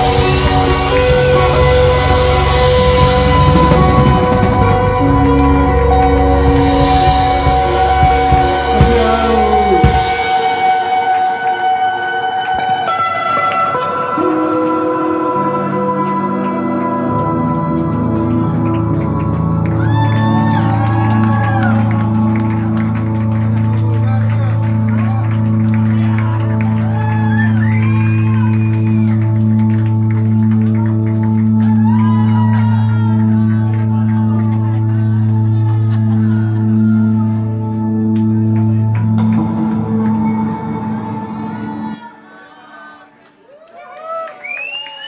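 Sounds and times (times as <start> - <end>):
electric guitar ringing notes: 0.0 - 42.1.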